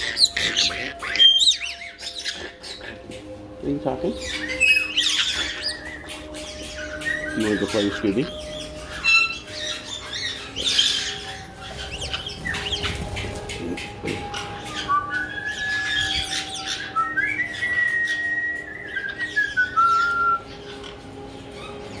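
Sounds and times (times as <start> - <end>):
parrots chirping and squawking: 0.0 - 22.0.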